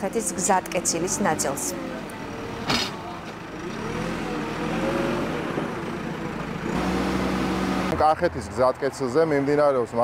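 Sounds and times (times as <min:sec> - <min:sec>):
backhoe engine working: 0:00.0 - 0:08.9.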